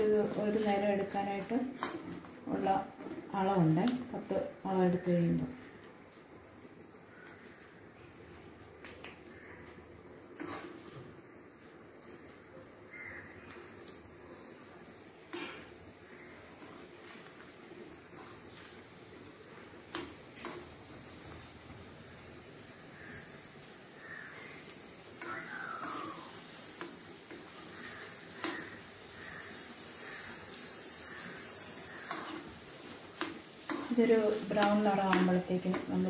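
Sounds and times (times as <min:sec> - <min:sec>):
chillies sizzling in hot oil: 0:00.0 - 0:05.8, 0:07.0 - 0:36.0
metal spoon clicking on pan: 0:33.2 - 0:36.0.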